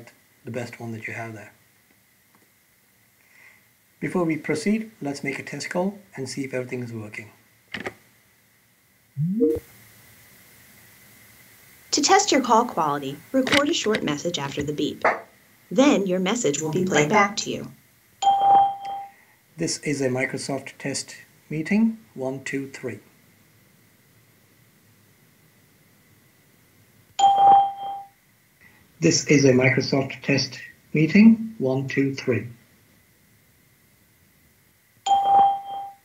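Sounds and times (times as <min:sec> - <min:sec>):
faint steady hiss: 0:00.0 - 0:36.0
short rising tone: 0:09.2 - 0:09.6
electronic ding chime: 0:27.2 - 0:28.1, 0:35.1 - 0:36.0.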